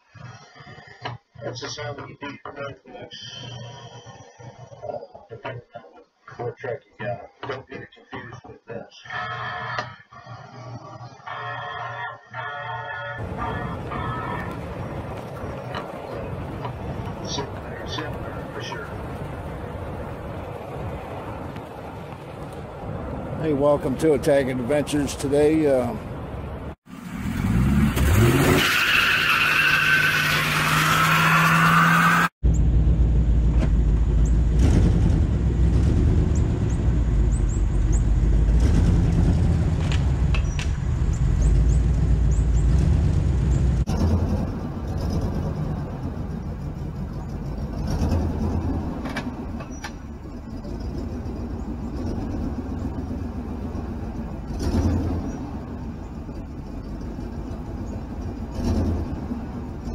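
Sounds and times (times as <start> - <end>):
tires squealing: 9.0 - 26.0, 27.1 - 32.3, 34.2 - 59.9
truck engine running loud: 13.2 - 26.7, 32.2 - 59.9
engine revving: 26.9 - 59.9.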